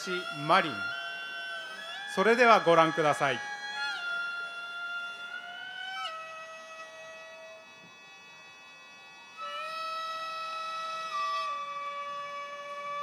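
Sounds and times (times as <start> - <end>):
solo wind instrument court music: 0.0 - 4.6, 5.4 - 13.0.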